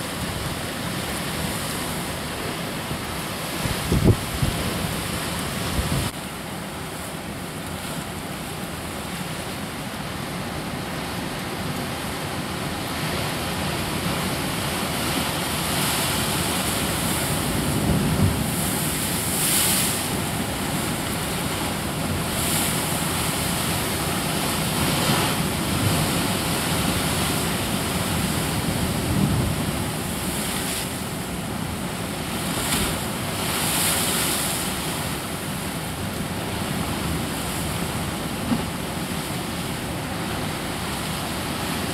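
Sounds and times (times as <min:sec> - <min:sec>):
surf washing over rocks: 0:00.0 - 0:41.9
wind on microphone: 0:03.5 - 0:06.2.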